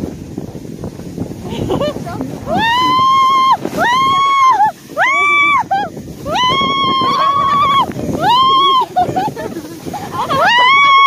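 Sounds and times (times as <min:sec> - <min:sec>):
sled rushing on snow: 0:00.0 - 0:11.0
people screaming with excitement: 0:02.4 - 0:11.0.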